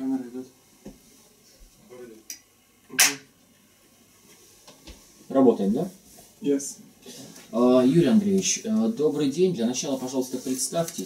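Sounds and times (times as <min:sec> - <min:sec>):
sharp hand clap: 0:03.0 - 0:03.3.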